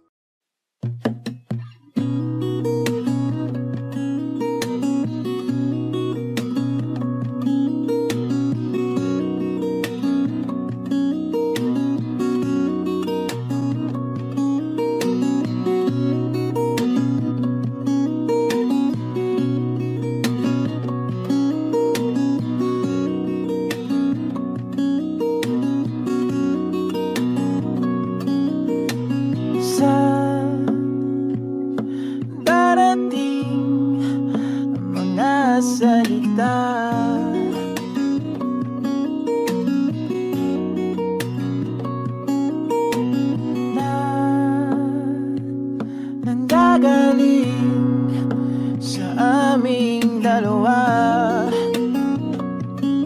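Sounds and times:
acoustic guitar strumming and picking: 0.8s - 53.0s.

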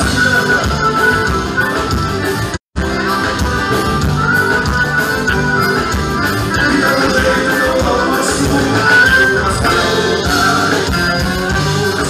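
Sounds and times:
live band playing dance music: 0.0s - 12.0s.

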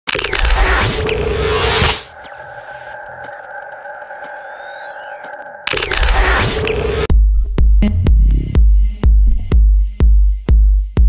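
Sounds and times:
electronic drone: 0.1s - 7.1s.

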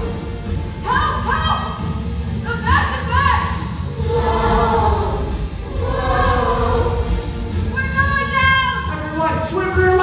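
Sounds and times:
children's chorus singing: 4.0s - 7.2s.

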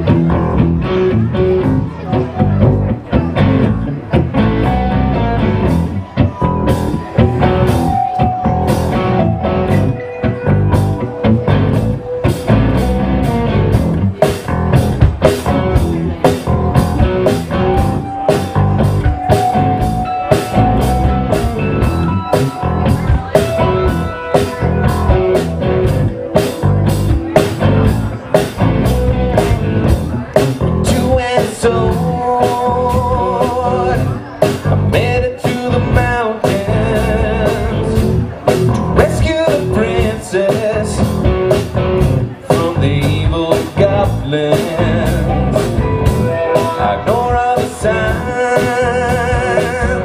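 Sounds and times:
electric guitar lines: 0.0s - 32.2s
bass guitar: 0.0s - 50.0s
drum kit beat: 0.0s - 50.0s.

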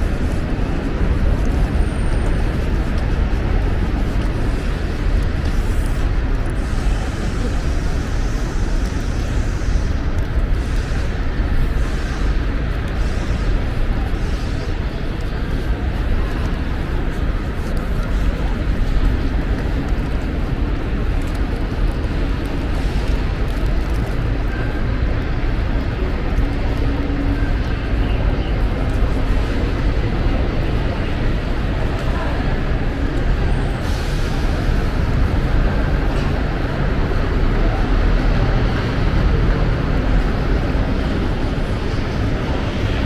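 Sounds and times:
faint voices: 0.0s - 43.0s
road traffic rumble: 0.0s - 43.0s.

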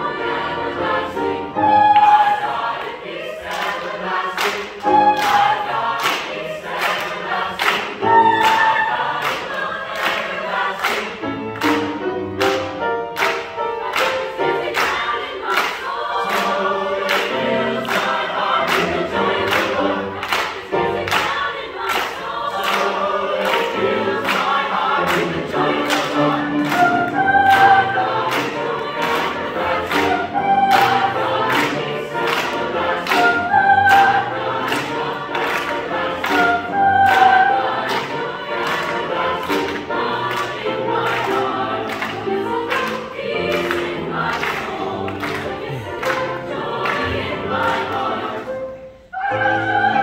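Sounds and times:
choir singing a gospel spiritual: 0.0s - 50.0s
people clapping in time: 3.4s - 48.1s.

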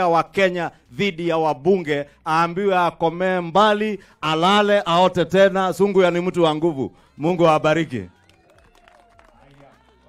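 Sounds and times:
amplified speech: 0.0s - 8.2s.

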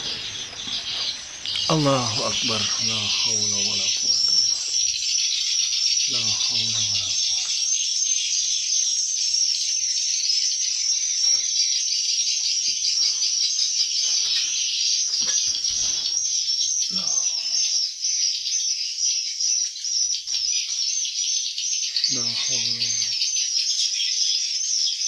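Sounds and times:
swiftlets chirping: 0.0s - 9.5s.

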